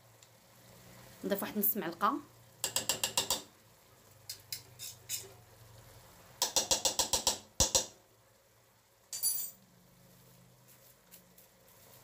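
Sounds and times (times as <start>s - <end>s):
spoon tapping metal pot rim: 2.6s - 3.5s, 6.4s - 7.9s.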